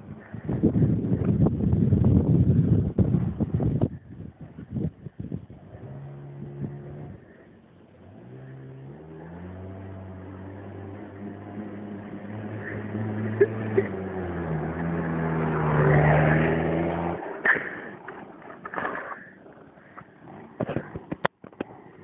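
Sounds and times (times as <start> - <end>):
small motorbike engine: 0.1 - 22.0.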